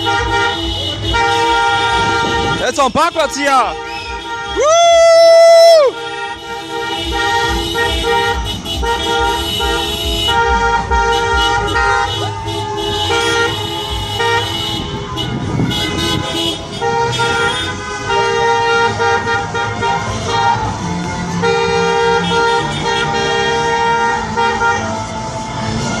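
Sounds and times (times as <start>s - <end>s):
car horns honking: 0.0s - 26.0s
engine and road noise: 0.0s - 26.0s.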